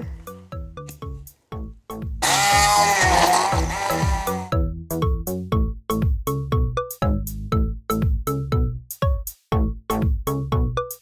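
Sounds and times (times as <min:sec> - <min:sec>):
stick blender running: 0:02.2 - 0:04.5.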